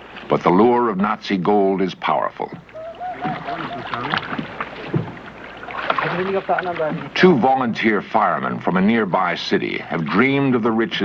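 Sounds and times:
water lapping against boat: 2.0 - 11.0
knocks on wooden boat: 4.1 - 6.1.

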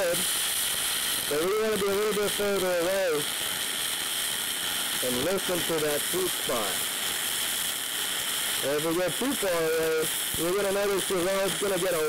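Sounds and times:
welding arc hissing: 0.0 - 12.0.

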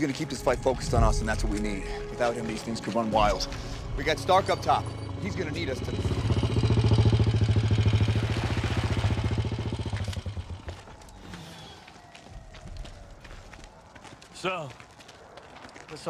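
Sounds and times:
motorcycle engine running: 3.3 - 11.0.

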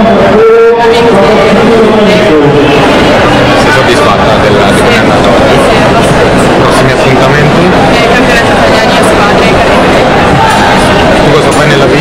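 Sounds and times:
man talking: 0.0 - 3.0, 3.6 - 5.5, 6.6 - 8.3, 11.2 - 12.0
loud steady background noise: 0.0 - 12.0.

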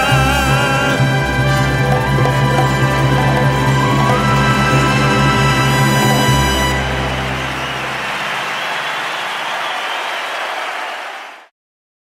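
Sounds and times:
band low note: 0.0 - 8.1
audience applauding: 1.7 - 11.5.

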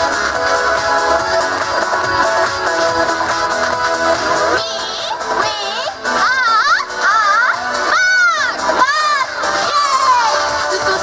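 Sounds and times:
woman shouting into a microphone: 4.6 - 11.0.

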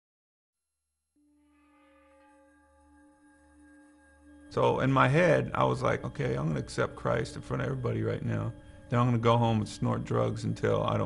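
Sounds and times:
faint soft musical drone: 1.2 - 11.0.

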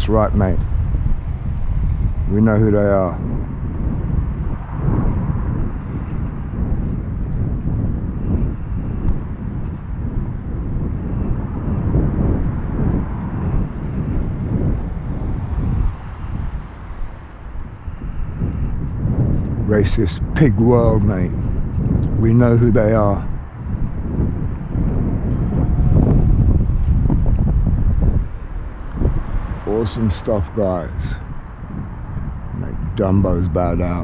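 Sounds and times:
low street rumble: 0.0 - 34.0.

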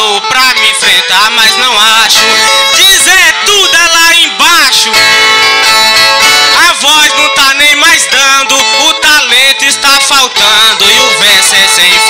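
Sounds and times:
person singing: 0.0 - 12.0
viola playing: 0.0 - 12.0.

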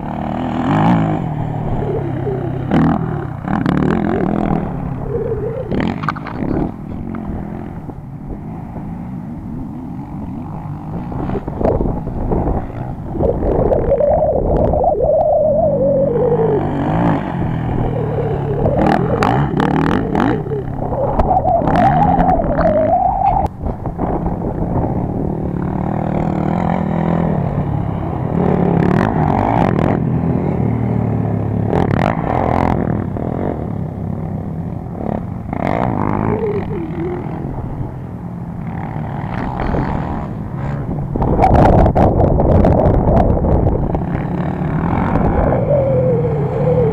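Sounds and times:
quad engines revving: 0.0 - 46.9
wind buffeting microphone: 0.0 - 46.9.

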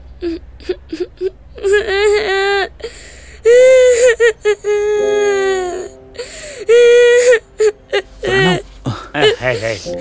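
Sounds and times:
boy sobbing: 0.1 - 10.0
boy wailing cry: 3.5 - 6.0, 6.7 - 9.6.

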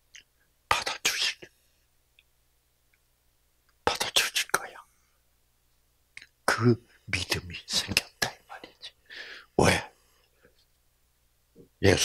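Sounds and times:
man whispering: 0.1 - 1.6, 3.8 - 5.0, 6.2 - 10.4, 11.8 - 12.0.

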